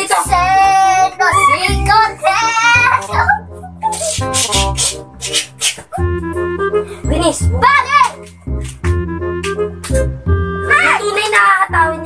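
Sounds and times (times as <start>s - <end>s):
backing track with low bass: 0.0s - 12.0s
high voice singing: 3.8s - 6.1s.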